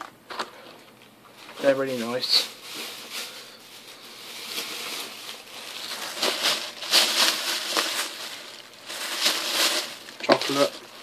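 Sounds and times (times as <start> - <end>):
rustling handling noise: 0.0 - 11.0.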